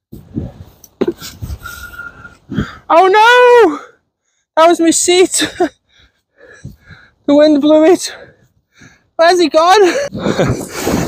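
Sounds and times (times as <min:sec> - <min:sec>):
wind buffeting microphone: 0:00.0 - 0:02.9, 0:06.4 - 0:07.3, 0:09.8 - 0:11.0.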